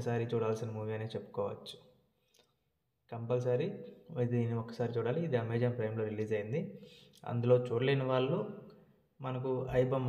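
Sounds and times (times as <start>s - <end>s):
man speaking: 0.0s - 1.8s, 3.1s - 8.6s, 9.2s - 10.0s.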